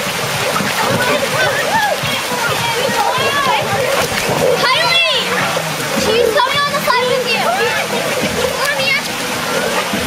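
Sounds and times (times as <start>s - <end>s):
water splashing in a pool: 0.0s - 10.0s
children shouting and calling: 0.9s - 9.9s.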